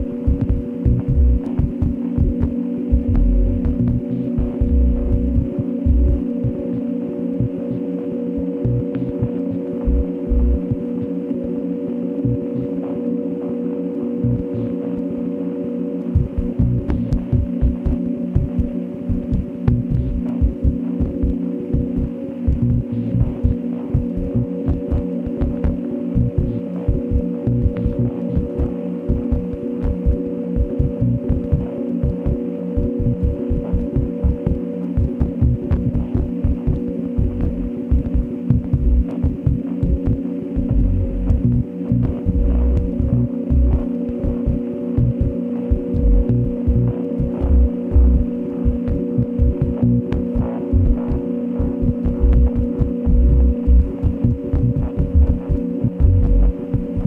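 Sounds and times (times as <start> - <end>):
ambient electronic music: 0.0 - 57.0.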